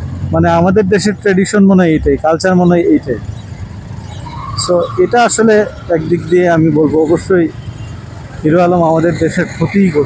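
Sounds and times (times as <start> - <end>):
street traffic: 0.0 - 10.0
man talking: 0.3 - 3.2, 4.5 - 7.6, 8.4 - 10.0.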